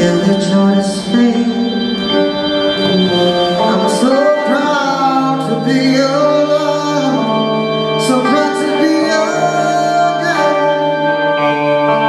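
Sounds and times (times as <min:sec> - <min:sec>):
sustained organ chord: 0:00.0 - 0:12.0.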